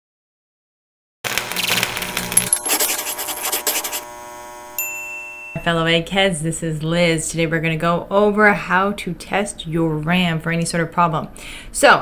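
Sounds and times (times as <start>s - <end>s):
brief high tone: 4.8s - 5.8s.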